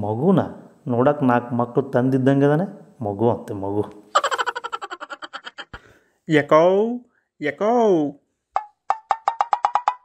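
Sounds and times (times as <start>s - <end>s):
cartoon wood block knocks: 8.5s - 10.0s.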